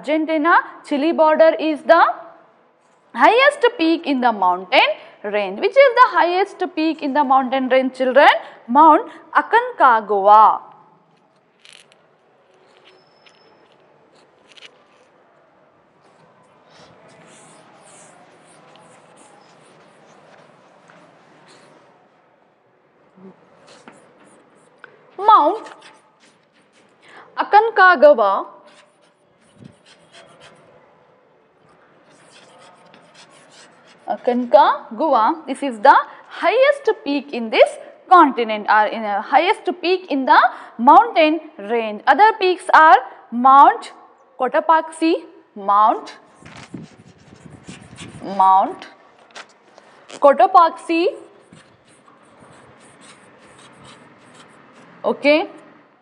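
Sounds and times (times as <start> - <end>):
chalk scratching on chalkboard: 12.6 - 15.1, 16.7 - 21.9, 23.6 - 27.1, 28.6 - 30.8, 32.0 - 34.5, 46.1 - 48.9, 50.0 - 55.0.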